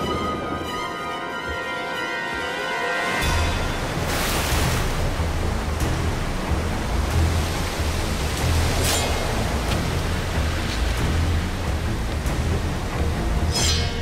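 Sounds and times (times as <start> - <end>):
heavy rain: 0.0 - 13.5
water splashes: 3.1 - 14.0.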